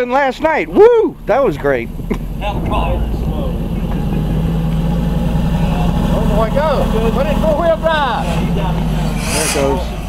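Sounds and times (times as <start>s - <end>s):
engine running under load: 0.4s - 10.0s.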